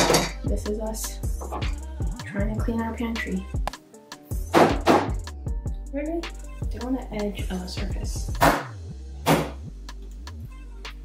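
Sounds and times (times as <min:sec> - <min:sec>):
music with beat and bass: 0:00.0 - 0:11.0.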